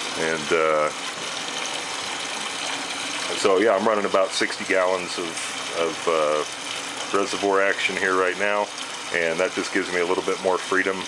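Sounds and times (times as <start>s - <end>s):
water splashing into reservoir: 0.0s - 11.0s.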